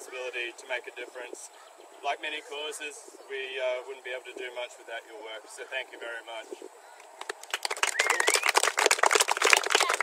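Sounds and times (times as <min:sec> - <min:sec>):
hands clapping: 0:07.1 - 0:10.0.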